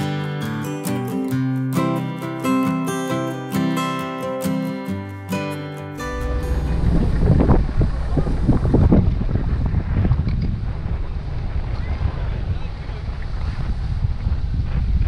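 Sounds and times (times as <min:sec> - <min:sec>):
wind rumbling on microphone: 0:06.0 - 0:15.0.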